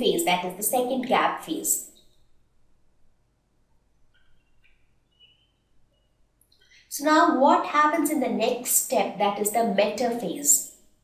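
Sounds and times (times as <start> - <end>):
faint high-pitched chirps: 4.1 - 6.9.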